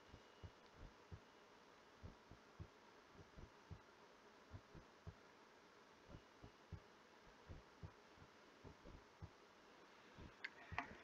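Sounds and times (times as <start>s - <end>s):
soft low thuds: 0.0s - 1.3s, 2.0s - 3.9s, 4.5s - 5.3s, 6.0s - 9.4s, 10.1s - 11.0s
faint room hum: 0.0s - 11.0s.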